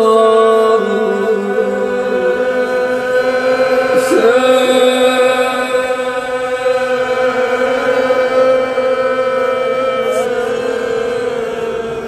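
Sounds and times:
man singing a long note: 0:00.0 - 0:12.0.

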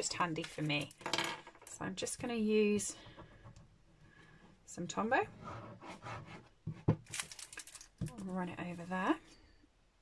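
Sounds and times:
crinkly paper rustling: 0:07.0 - 0:08.8.

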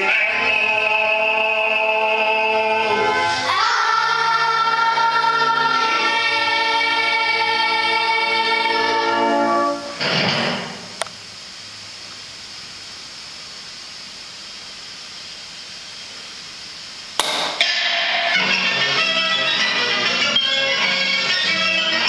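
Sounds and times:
recorded music: 0:00.0 - 0:11.0, 0:17.2 - 0:22.0
faint steady hiss: 0:00.0 - 0:22.0
sharp knock: 0:17.2 - 0:18.4.

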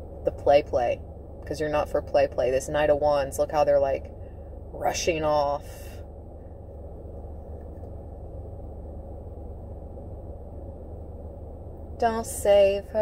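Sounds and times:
car cabin rumble and hum: 0:00.0 - 0:13.0.

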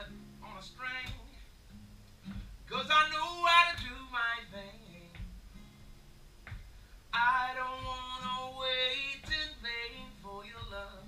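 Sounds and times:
man singing: 0:00.0 - 0:01.5, 0:02.7 - 0:05.3, 0:07.1 - 0:11.0
acoustic guitar strums: 0:00.0 - 0:11.0.

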